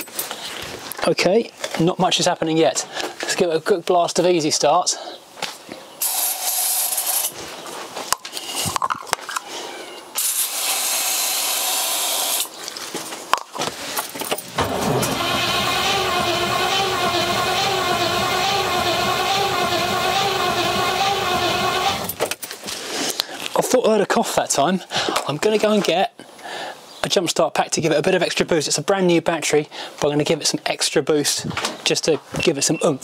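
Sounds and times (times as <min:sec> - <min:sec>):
aerosol can spraying: 0:06.0 - 0:07.3, 0:10.2 - 0:12.5
engine cranking on starter motor: 0:14.5 - 0:22.2.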